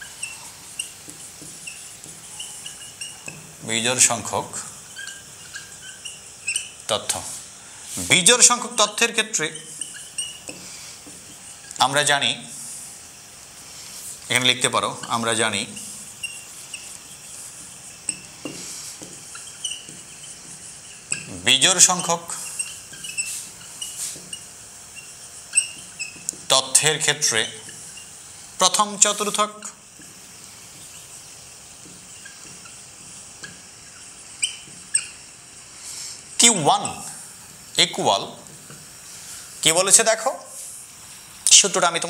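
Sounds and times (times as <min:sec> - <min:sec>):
marker squeaking on whiteboard: 0:00.0 - 0:40.9
steady low hiss: 0:00.0 - 0:42.0.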